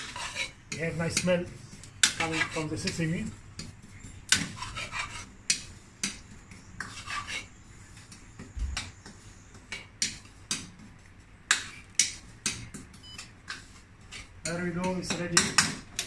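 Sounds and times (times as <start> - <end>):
spoon scraping and tapping a pan: 2.0 - 10.8, 11.5 - 16.0.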